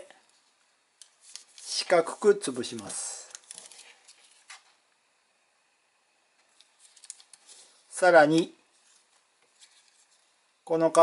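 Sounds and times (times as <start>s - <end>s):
paper crinkling and tapping: 0.5s - 1.7s, 2.7s - 4.8s, 6.4s - 10.3s.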